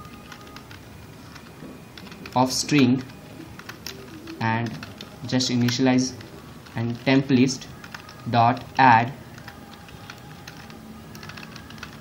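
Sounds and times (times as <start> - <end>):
computer keyboard typing: 0.0 - 12.0.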